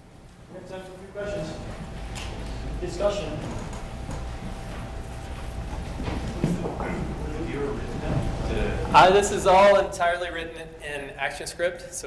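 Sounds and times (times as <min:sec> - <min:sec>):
faint speech in large room: 0:00.0 - 0:12.0
steady low hum: 0:00.0 - 0:12.0.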